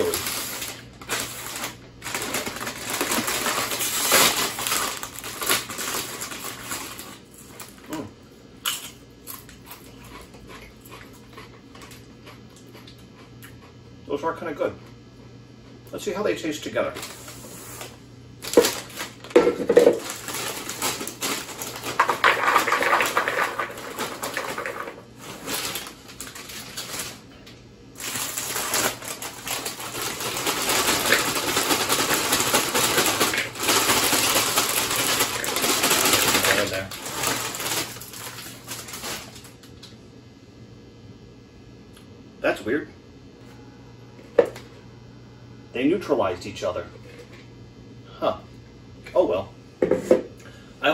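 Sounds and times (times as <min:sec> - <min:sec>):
chips pouring into a bowl: 0:00.0 - 0:07.7, 0:18.4 - 0:27.2, 0:28.0 - 0:39.5
foil snack bags rustling: 0:00.0 - 0:08.0, 0:16.7 - 0:39.9.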